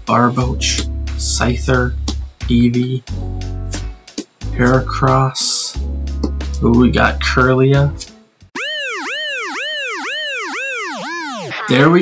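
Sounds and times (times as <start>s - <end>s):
cartoon boing swoops: 8.6s - 11.8s.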